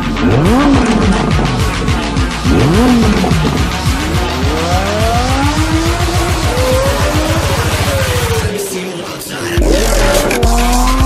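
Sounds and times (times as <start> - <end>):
loud music: 0.0 - 11.0
sports car engine accelerating: 0.0 - 11.0.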